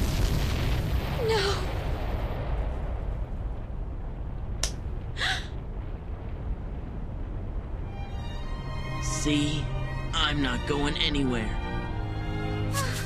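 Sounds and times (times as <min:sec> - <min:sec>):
explosion rumble: 0:00.0 - 0:08.7.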